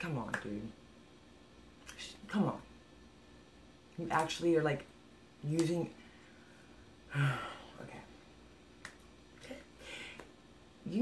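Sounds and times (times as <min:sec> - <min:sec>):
soft breath: 0:09.4 - 0:10.4.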